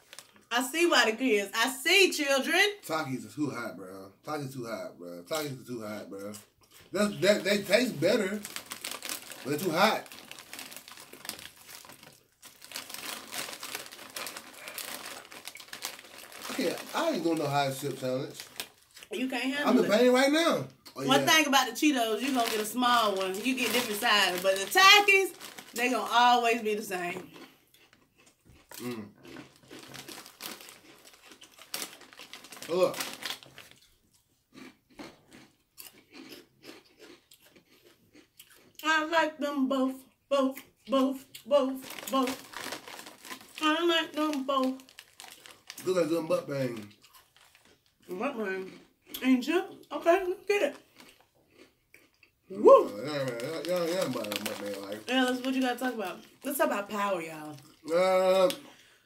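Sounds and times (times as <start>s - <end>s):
chip bag crinkling: 0.0s - 0.5s, 6.7s - 20.4s, 21.0s - 27.5s, 28.2s - 34.7s, 41.8s - 48.9s, 50.6s - 52.1s, 52.8s - 58.6s.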